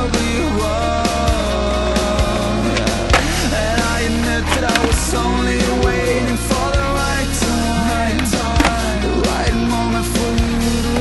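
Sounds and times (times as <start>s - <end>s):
rock music: 0.0s - 11.0s
skateboard wheels rolling on concrete: 0.2s - 11.0s
skateboard clacks: 2.2s - 9.4s.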